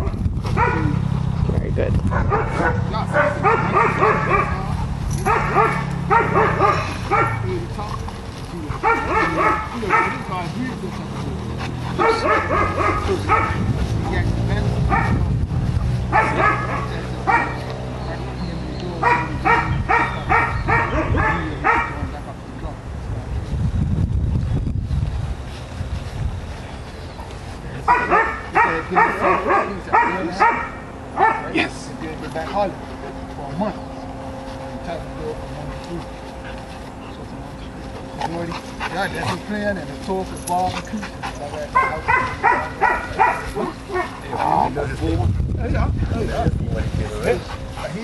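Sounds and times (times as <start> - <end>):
dog barking: 0.0 - 1.0, 2.1 - 7.6, 8.8 - 10.5, 11.9 - 13.8, 14.8 - 15.2, 16.1 - 17.7, 19.0 - 22.1, 27.8 - 31.6, 41.6 - 44.6
steady low hum: 0.0 - 48.0.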